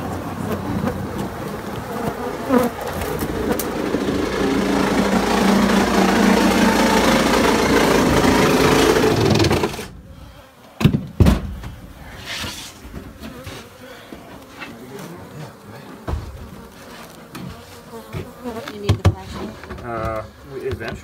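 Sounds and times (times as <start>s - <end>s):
honey bees buzzing loudly: 0.0s - 10.9s, 12.0s - 20.8s.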